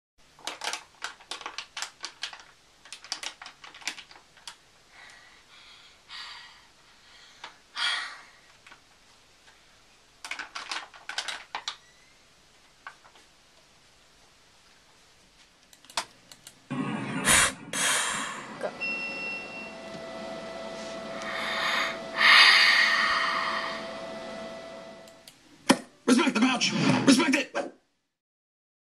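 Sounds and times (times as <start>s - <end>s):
faint steady hum: 0.2s - 26.2s
loud breathy hiss: 4.8s - 8.6s, 17.2s - 18.6s, 21.2s - 23.9s
breathy rush of air: 17.1s - 18.7s, 20.6s - 24.5s.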